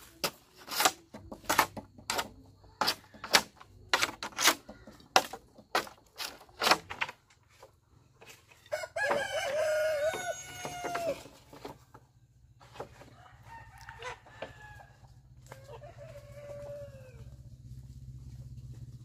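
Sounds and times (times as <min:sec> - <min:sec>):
rooster crowing: 0:08.7 - 0:11.2, 0:13.2 - 0:17.3.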